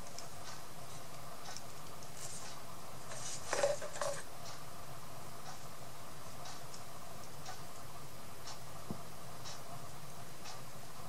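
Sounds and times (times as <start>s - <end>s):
plastic bottle and brush knocks: 3.1s - 4.2s.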